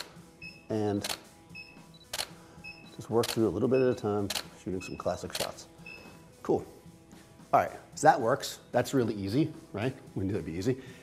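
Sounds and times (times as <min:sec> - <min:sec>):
flash unit beep: 0:00.4 - 0:06.2
camera shutter clicking: 0:01.0 - 0:01.3, 0:02.1 - 0:02.4, 0:03.2 - 0:03.5, 0:04.3 - 0:04.5, 0:05.3 - 0:05.6.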